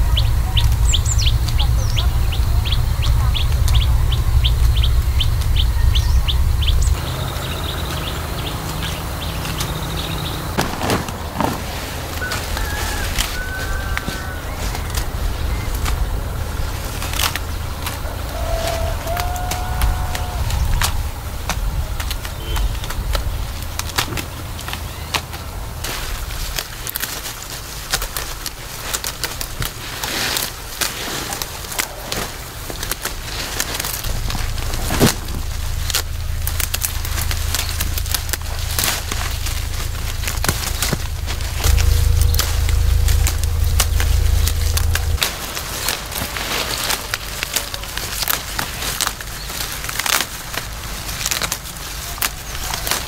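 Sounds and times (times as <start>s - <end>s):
low rumble: 0.0s - 23.9s, 34.0s - 51.4s
faint steady hum: 0.0s - 26.8s, 33.9s - 52.8s
leaves snapped off by hand: 8.0s - 53.0s.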